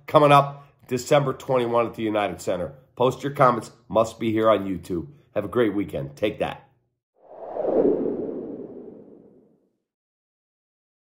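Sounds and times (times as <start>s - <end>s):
low airy whoosh: 7.2s - 9.6s.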